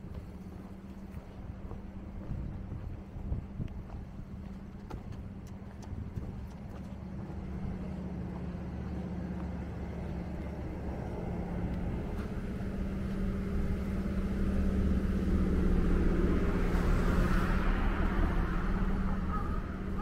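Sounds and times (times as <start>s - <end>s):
vehicle engine running: 0.0s - 20.0s
car passing by: 9.7s - 20.0s.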